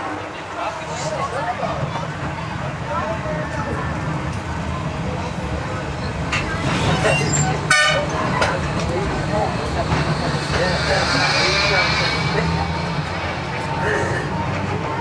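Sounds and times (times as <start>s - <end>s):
electric tram rumbling: 0.0s - 15.0s
passenger chatter: 0.0s - 15.0s.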